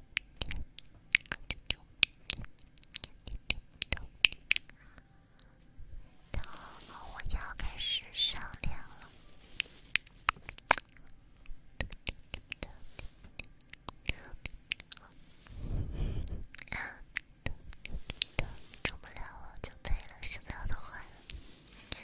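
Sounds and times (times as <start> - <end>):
wet mouth clicks: 0.1 - 5.0, 10.0 - 11.2, 11.8 - 15.2, 16.3 - 19.1
soft whispering: 0.4 - 22.0
breath blown onto microphone: 15.0 - 16.6, 17.8 - 19.0.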